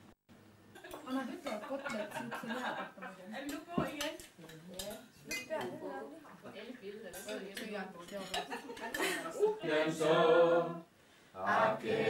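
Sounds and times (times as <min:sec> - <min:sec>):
low table conversation: 0:00.7 - 0:12.0
cutlery clinking on plates: 0:03.4 - 0:05.8, 0:07.1 - 0:09.3.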